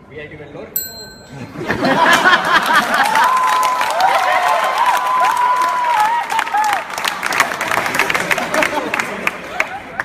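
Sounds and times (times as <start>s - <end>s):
audience cheering: 2.0s - 10.0s
audience clapping: 2.2s - 10.0s.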